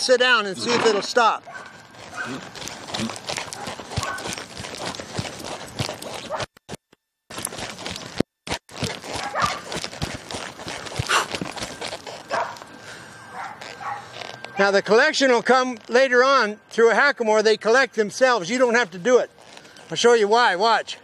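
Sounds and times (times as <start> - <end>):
horse hoofbeats on dirt: 0.3 - 16.9, 17.9 - 21.0.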